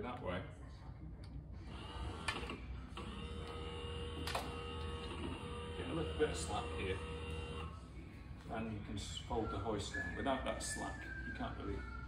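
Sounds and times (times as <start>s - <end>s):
electric hoist motor whine: 1.7s - 7.8s.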